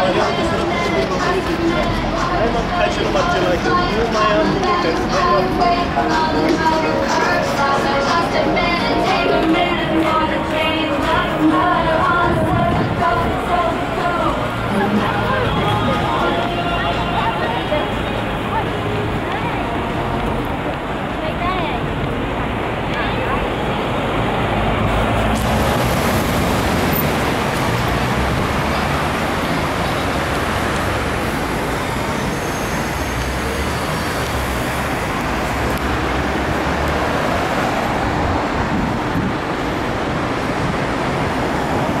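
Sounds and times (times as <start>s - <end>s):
city road traffic: 0.0s - 42.0s.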